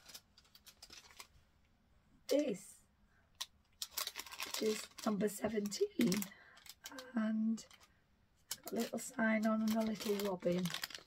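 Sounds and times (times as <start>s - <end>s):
faint clicks and paper rustles: 0.0s - 1.5s, 3.4s - 11.0s.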